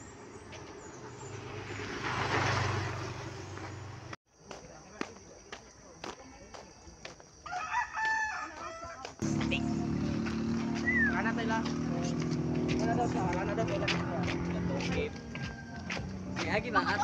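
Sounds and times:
rooster crowing: 7.4 - 9.2, 14.9 - 16.2
music with sustained low notes: 9.2 - 17.0.

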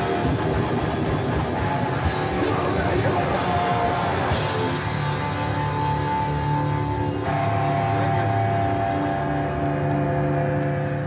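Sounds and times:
drums and cymbals: 0.0 - 7.2
distorted electric guitars droning: 0.0 - 11.0.

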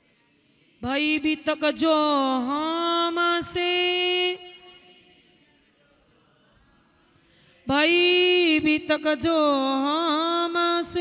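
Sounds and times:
woman singing chant: 0.1 - 11.0.

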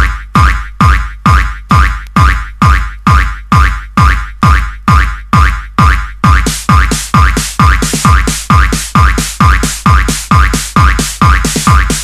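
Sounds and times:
drum machine kick drum: 0.0 - 12.0.

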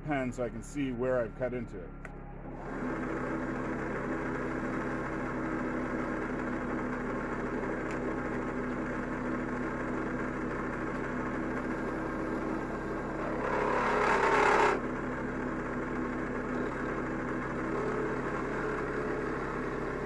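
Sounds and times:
drill press motor humming: 2.3 - 20.0.

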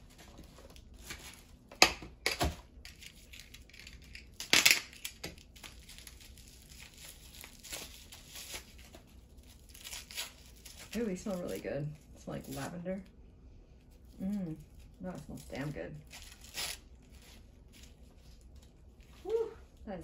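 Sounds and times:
plastic rustling and crackling: 0.0 - 13.1, 13.8 - 19.9
plastic wrapping tearing: 2.8 - 12.8, 14.0 - 19.4.

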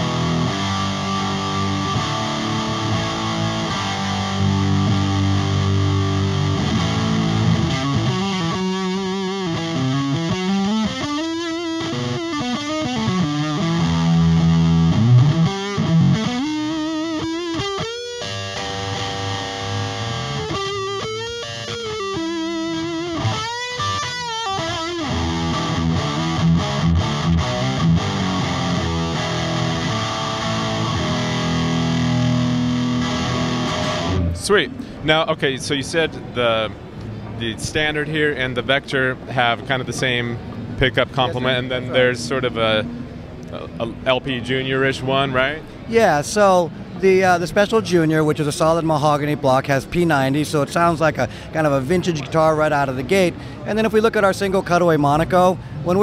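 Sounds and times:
distorted electric guitar: 0.0 - 35.0.

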